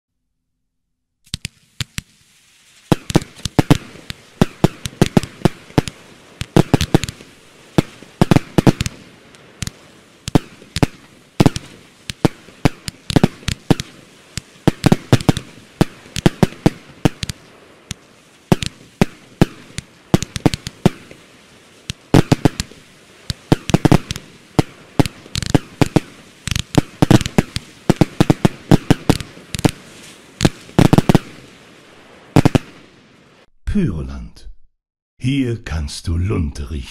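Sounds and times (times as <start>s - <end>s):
fireworks launch thumps: 1.2s - 32.9s
fireworks crackling pops: 1.2s - 33.5s.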